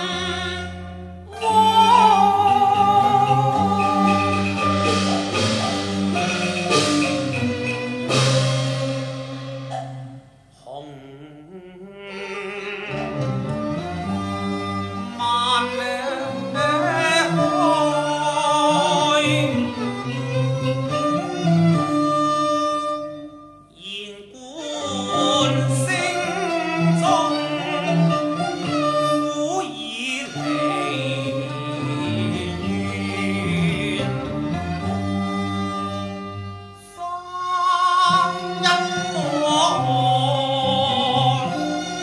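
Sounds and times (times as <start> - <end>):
bowed string instruments: 0.0 - 42.0
opera accompaniment ensemble: 0.0 - 42.0.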